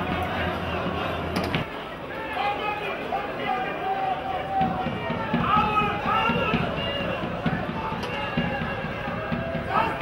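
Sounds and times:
football match broadcast: 0:00.0 - 0:10.0
outdoor background noise: 0:00.0 - 0:10.0.

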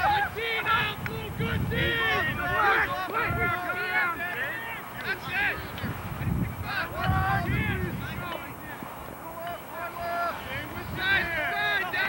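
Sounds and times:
people shouting indistinctly: 0:00.0 - 0:05.8, 0:09.3 - 0:12.0.

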